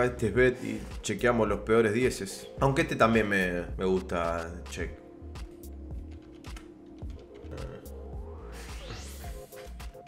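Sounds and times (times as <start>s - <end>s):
background music: 0.0s - 10.0s
computer keyboard keystrokes: 6.1s - 7.4s.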